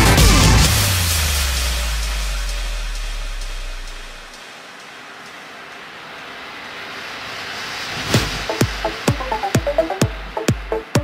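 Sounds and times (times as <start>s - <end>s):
sub-bass note: 0.0s - 4.4s
wash of noise: 0.0s - 11.0s.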